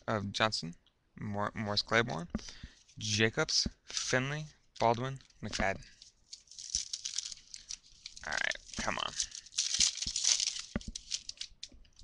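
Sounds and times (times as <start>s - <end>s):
trading cards being handled: 2.4s - 12.0s
plastic wrapper crinkling: 3.8s - 12.0s
plastic pack ripping open: 5.9s - 12.0s.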